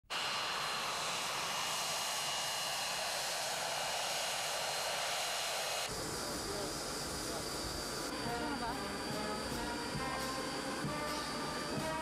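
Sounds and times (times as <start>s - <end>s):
aircraft turbine engines running: 0.0s - 12.0s.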